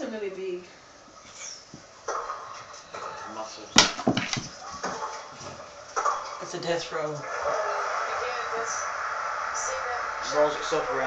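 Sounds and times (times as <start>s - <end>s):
indistinct talking: 4.5s - 11.0s.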